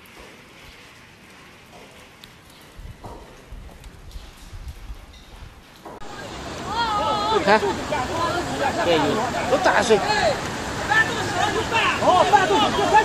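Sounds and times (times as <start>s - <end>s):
rushing water hiss: 5.8s - 13.0s.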